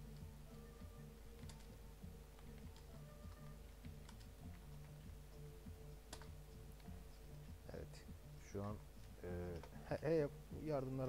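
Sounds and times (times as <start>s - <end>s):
low electrical hum: 0.0s - 11.0s
keyboard typing clicks: 1.3s - 5.1s, 6.1s - 7.0s.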